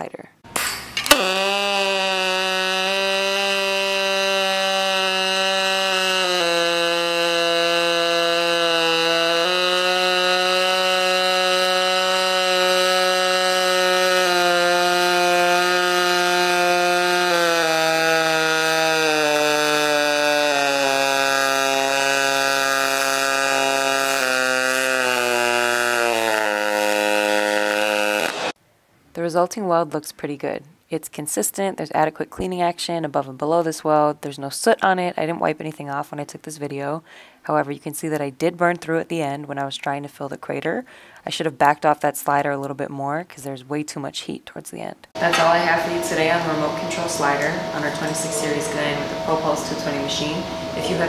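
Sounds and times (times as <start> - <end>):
welding arc buzz: 0.5 - 28.6, 45.2 - 51.0.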